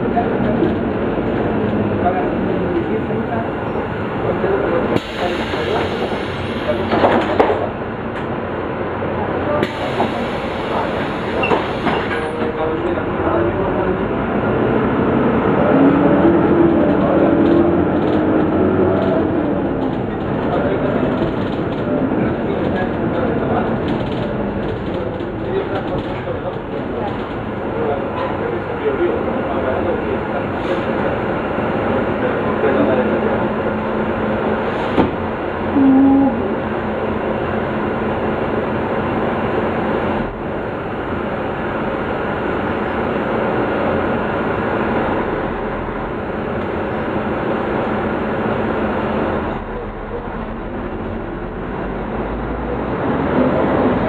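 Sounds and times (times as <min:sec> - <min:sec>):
bus engine and road noise: 0:00.0 - 0:54.0.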